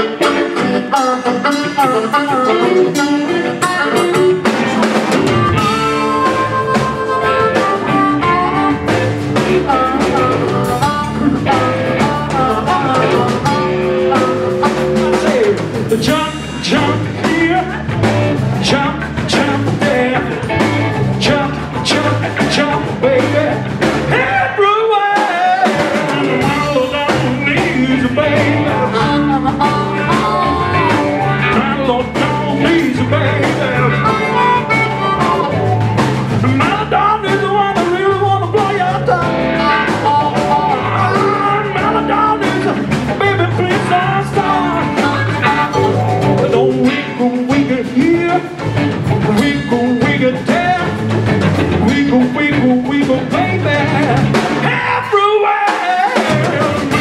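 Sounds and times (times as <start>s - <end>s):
electric bass: 0.0s - 24.7s, 25.5s - 55.3s, 56.2s - 57.0s
drum kit: 0.0s - 57.0s
electric guitars: 0.0s - 57.0s.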